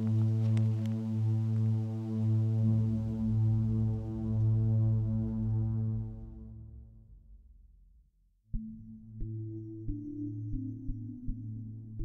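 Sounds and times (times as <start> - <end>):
deep rumble: 0.0 - 8.6
low droning bass tone: 0.0 - 11.5.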